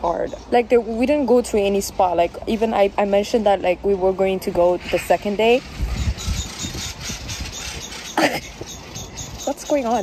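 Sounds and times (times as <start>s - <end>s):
wind rumble on microphone: 3.8s - 10.0s.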